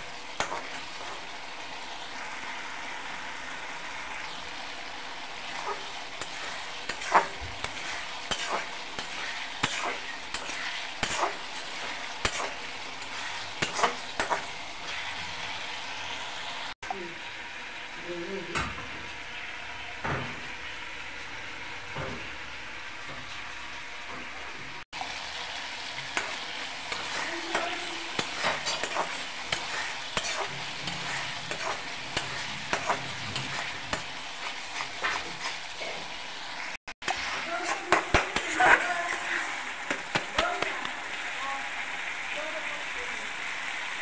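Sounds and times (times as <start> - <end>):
gravy sizzling in a pan: 0.0 - 44.0
metal spatula scraping a pan: 5.4 - 15.3, 26.0 - 36.1.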